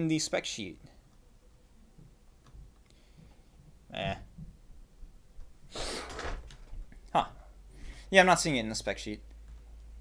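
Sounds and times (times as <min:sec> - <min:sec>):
man exhaling through nose: 0:05.7 - 0:06.2.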